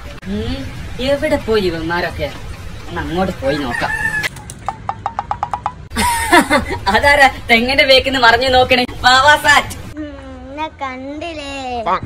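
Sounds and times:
chicken drawn-out call: 0:03.6 - 0:04.5.

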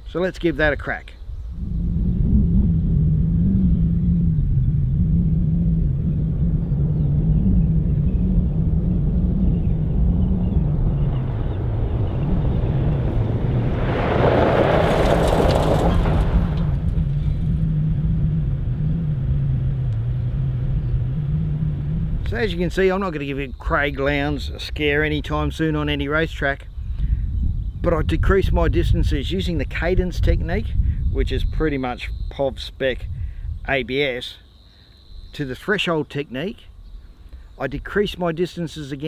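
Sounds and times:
gravel crunching under braking tyres: 0:10.5 - 0:24.4
vehicle on gravel road: 0:11.1 - 0:23.2.

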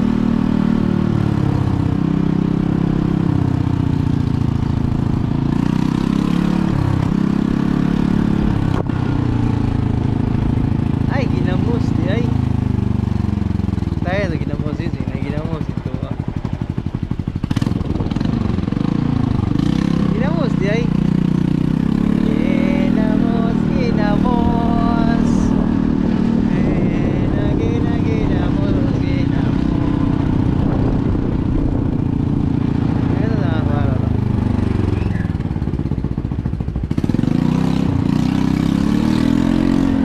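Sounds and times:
motorcycle engine riding: 0:00.0 - 0:40.0.

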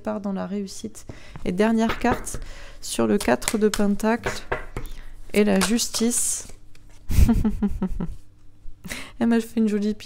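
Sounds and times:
woman laughing: 0:07.1 - 0:08.3.

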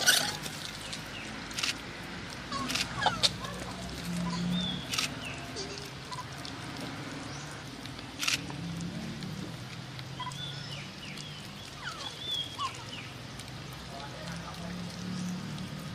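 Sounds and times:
low outdoor background: 0:00.0 - 0:15.9.

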